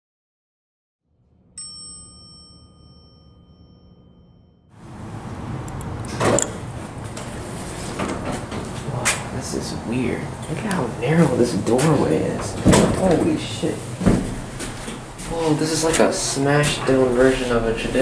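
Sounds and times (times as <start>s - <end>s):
bell-like chime ding: 1.6s - 4.7s.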